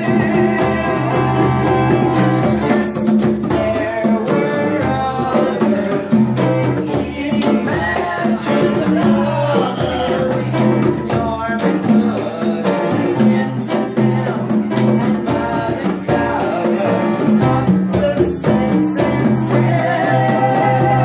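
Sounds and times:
conga drums: 0.0 - 21.0
man singing: 0.0 - 21.0.

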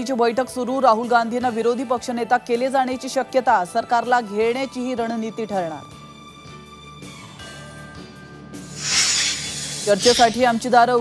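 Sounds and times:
low background music: 0.0 - 11.0
whoosh sound effect: 8.8 - 10.4.

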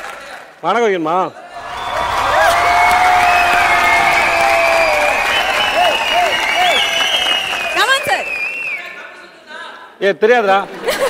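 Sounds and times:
shouts and whoops: 1.6 - 8.4
audience applauding: 1.6 - 8.8.

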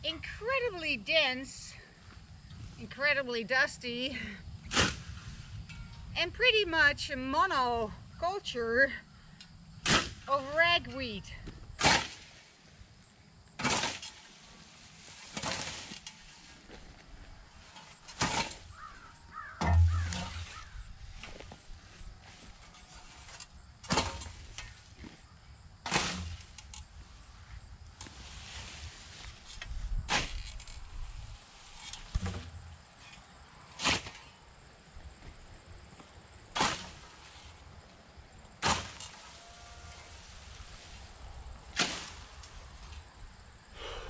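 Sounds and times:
scythe swishing through grass: 4.7 - 5.5, 13.6 - 16.7, 28.1 - 29.5, 38.6 - 41.1, 41.7 - 42.7
scythe blade swishing through weeds: 13.6 - 16.7, 36.6 - 37.6, 38.6 - 39.4, 41.7 - 42.7
bird calling: 18.7 - 20.9.

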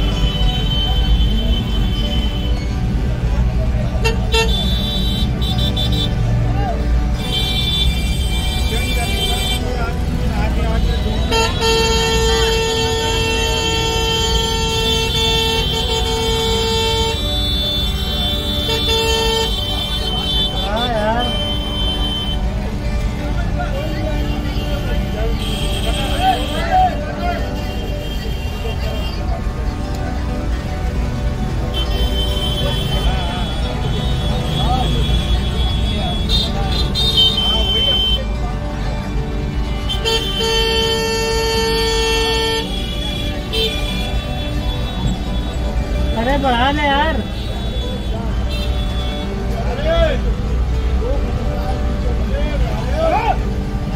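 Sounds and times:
motorcycle and scooter engines: 0.0 - 53.9
street traffic: 0.0 - 53.9
vehicle horn honking: 4.0 - 6.2, 10.8 - 22.4, 31.7 - 38.4, 39.8 - 46.2, 47.1 - 49.5.

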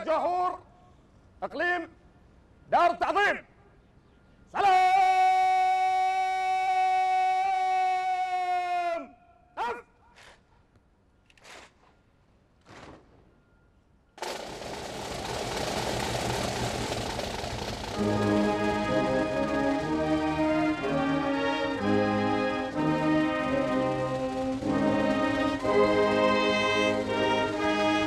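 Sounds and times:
open-air background noise: 0.0 - 28.0
person shouting drill command: 4.6 - 10.0
military brass band playing: 14.3 - 28.0.

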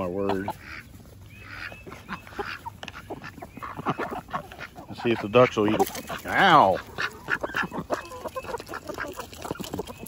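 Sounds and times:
soft duck quacks: 0.2 - 5.8.

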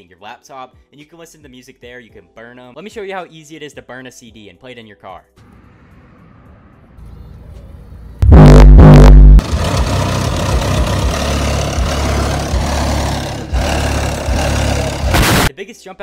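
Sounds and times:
bass-heavy music from car stereo: 8.2 - 9.4.

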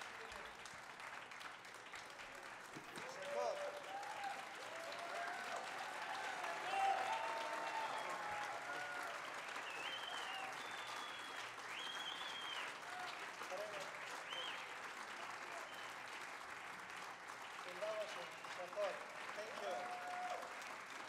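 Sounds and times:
audience applauding: 0.0 - 21.0.

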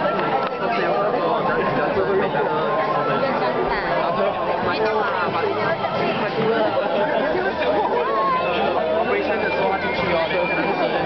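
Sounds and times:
guests chattering: 0.0 - 11.0.

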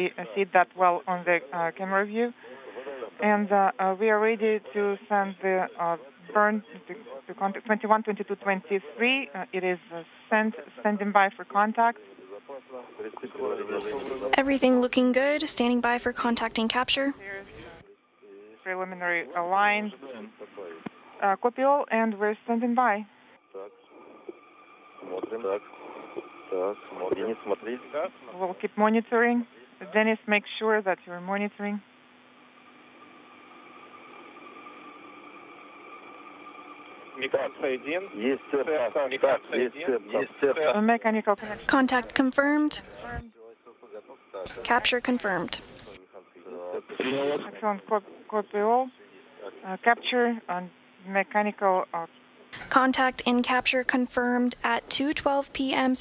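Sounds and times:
speech over radio: 0.0 - 17.8, 18.6 - 24.3, 25.0 - 31.8, 37.2 - 56.0
faint steady hum: 0.0 - 56.0.

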